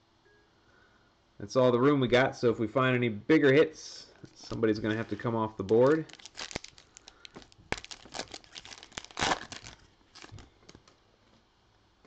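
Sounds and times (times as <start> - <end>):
plastic wrapper tearing and crinkling: 4.9 - 11.0.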